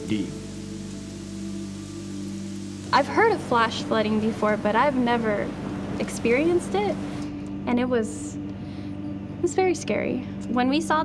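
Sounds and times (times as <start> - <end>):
floodwater rushing: 0.0 - 7.2
background music of low notes: 0.0 - 11.0.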